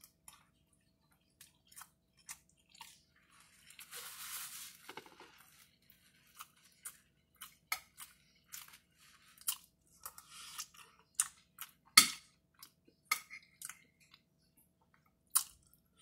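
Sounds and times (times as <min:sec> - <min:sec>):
person chewing: 0:00.0 - 0:03.9, 0:04.9 - 0:16.0.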